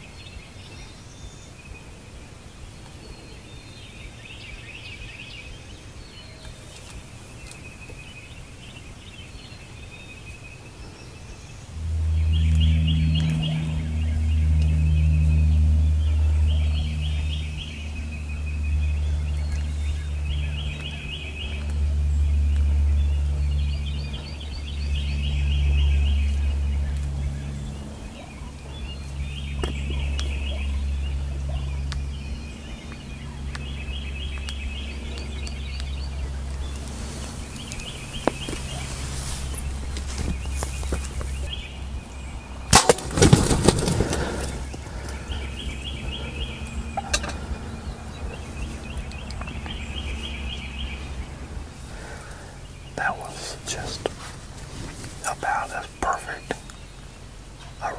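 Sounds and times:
turkey drumming low hum: 10.7s - 57.9s.

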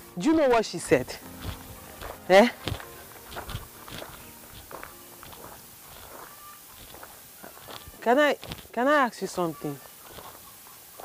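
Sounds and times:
footsteps on dirt road: 0.0s - 11.0s
flip-flops slapping: 0.2s - 11.0s.

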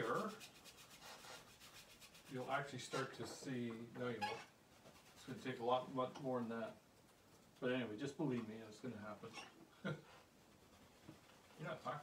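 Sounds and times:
paintbrush scrubbing canvas: 0.0s - 3.2s, 4.7s - 5.8s.

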